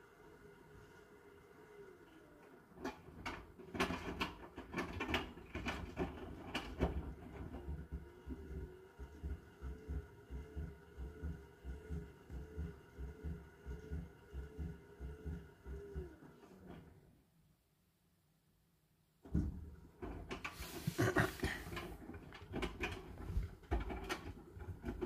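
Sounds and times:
washing machine motor humming: 0.0s - 17.0s
irregular knocks and clicks: 2.8s - 16.0s, 21.7s - 25.0s.

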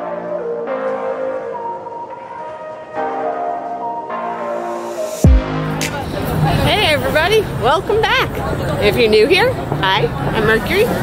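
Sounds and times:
sustained background music: 0.0s - 7.2s.

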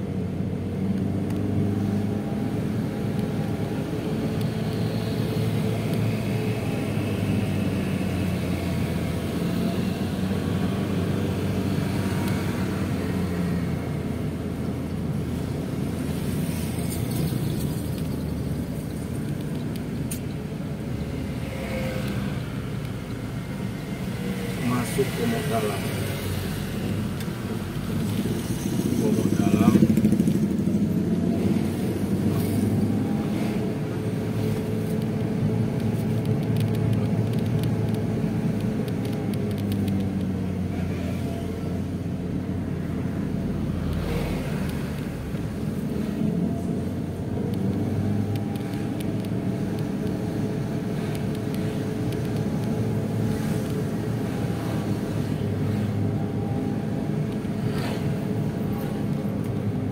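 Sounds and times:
car engine and road noise: 0.0s - 59.9s
motorcycles passing: 15.8s - 37.8s.

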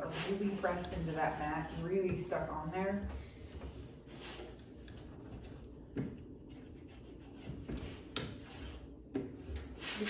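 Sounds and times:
hand rubbing vinyl sheet: 0.0s - 2.7s, 3.5s - 9.0s.

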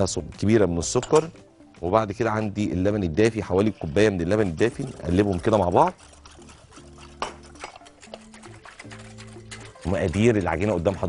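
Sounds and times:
soft background music: 0.0s - 11.0s
whisk clicking against glass bowl: 3.6s - 11.0s.

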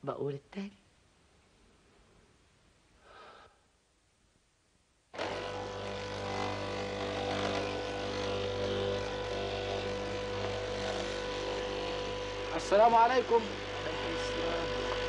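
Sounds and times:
cloth-cutting machine humming: 5.2s - 15.0s.

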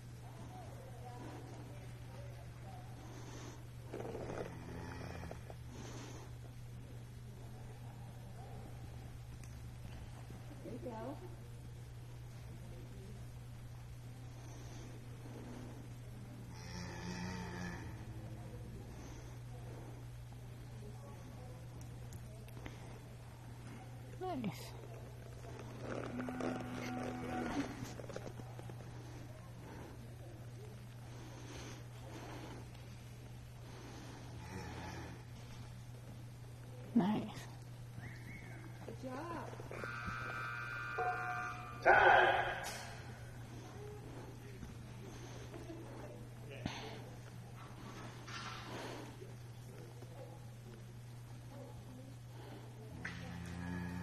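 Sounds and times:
cow mooing: 26.1s - 27.9s, 39.7s - 43.0s, 53.1s - 54.0s
timer buzzer: 39.7s - 43.0s.

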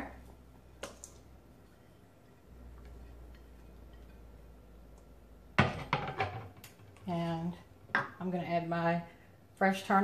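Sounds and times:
ceramic plate clattering on stone: 5.6s - 6.6s.

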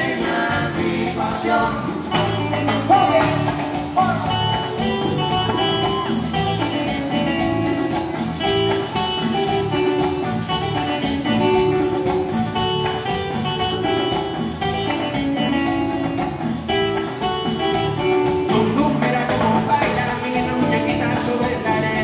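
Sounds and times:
guitar line: 0.0s - 22.0s
latin dance band playing: 0.0s - 22.0s.

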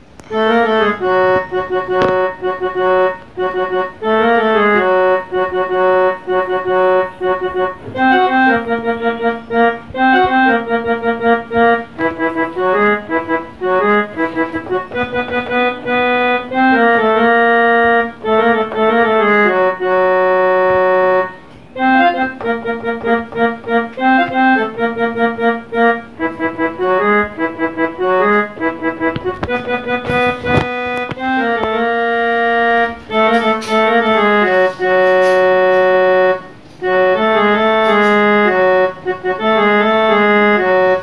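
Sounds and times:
electronic keyboard playing a tune: 0.0s - 41.0s.

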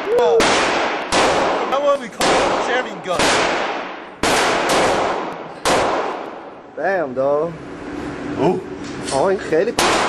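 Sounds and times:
gunshots echoing indoors: 0.2s - 6.6s, 9.8s - 10.0s.

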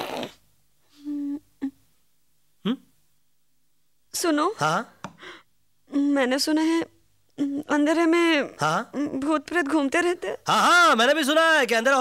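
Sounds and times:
person humming: 1.0s - 1.8s, 7.4s - 7.8s.

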